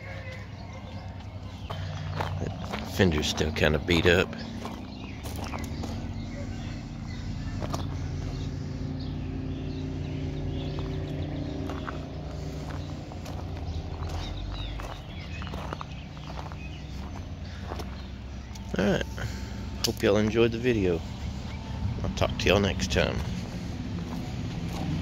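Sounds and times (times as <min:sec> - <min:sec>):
footsteps on gravel: 0:00.0 - 0:25.0
steady low hum: 0:00.0 - 0:25.0.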